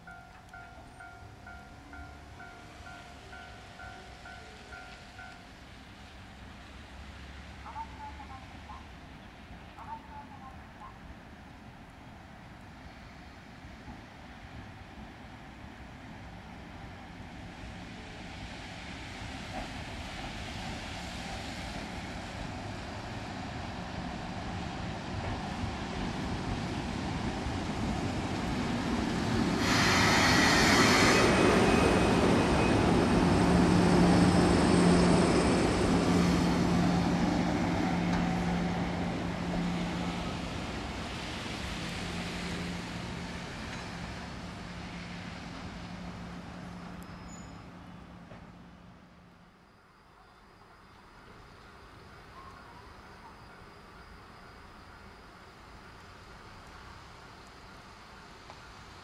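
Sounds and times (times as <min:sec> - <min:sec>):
electric locomotive passing: 0:00.0 - 0:59.0.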